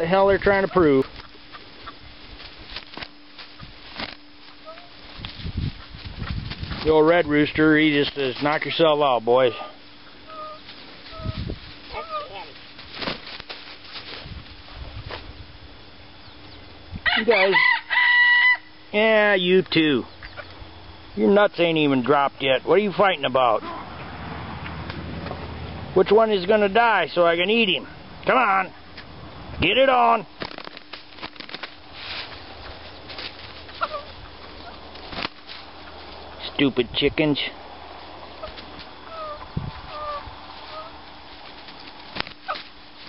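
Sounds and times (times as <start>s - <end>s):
wings flapping: 0.6s - 7.2s, 10.4s - 15.3s, 30.3s - 36.4s, 38.3s - 43.0s
bodies scuffling: 10.6s - 15.3s
rustling bursts: 10.6s - 15.4s, 30.3s - 36.3s
rooster call: 17.0s - 18.8s.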